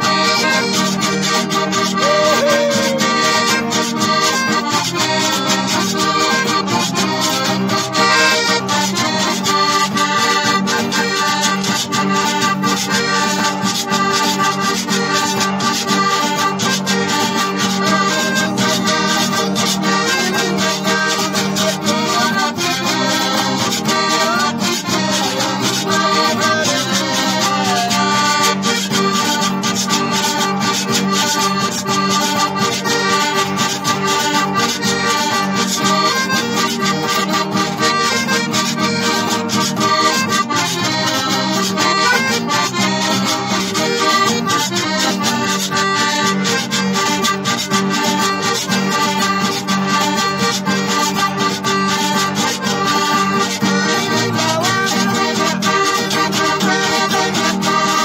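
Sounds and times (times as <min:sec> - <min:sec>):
piano accordion melody: 0:00.0 - 0:58.0.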